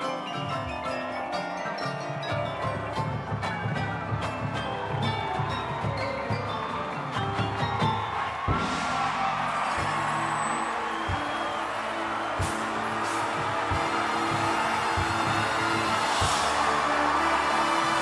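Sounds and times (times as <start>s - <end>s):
crowd cheering: 0.0s - 18.0s
percussion strikes: 0.0s - 18.0s.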